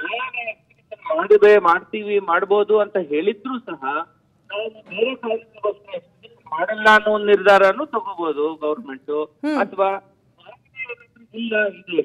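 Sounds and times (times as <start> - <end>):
man speaking over telephone: 0.0 - 12.0.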